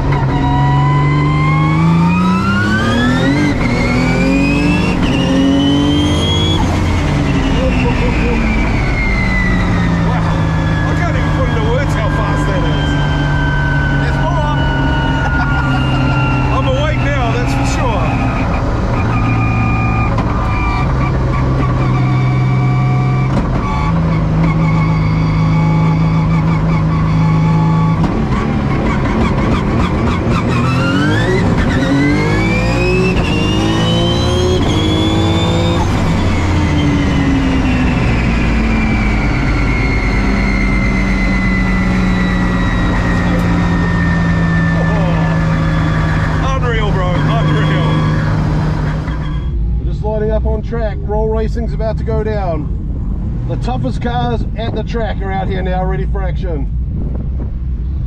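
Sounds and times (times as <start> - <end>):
race car engine: 0.0 - 58.0
high-pitched whine: 0.1 - 29.6, 30.4 - 53.4.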